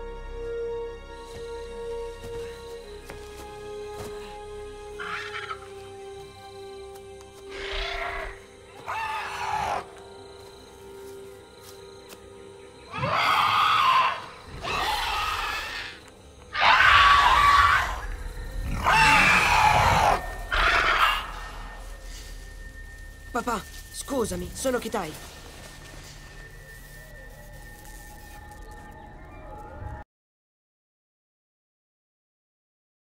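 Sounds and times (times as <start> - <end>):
giant bird creature screeching: 5.0 - 5.6, 7.5 - 9.9, 12.9 - 21.8.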